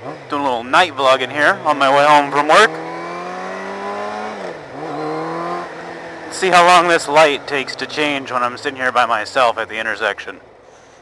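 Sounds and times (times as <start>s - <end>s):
motorcycle engine running: 0.0s - 9.0s.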